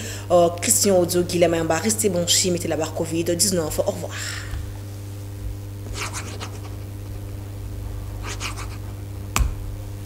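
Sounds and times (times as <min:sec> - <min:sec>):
low electrical hum: 0:00.0 - 0:10.0
pen scratching on paper: 0:05.9 - 0:06.8, 0:08.2 - 0:09.0.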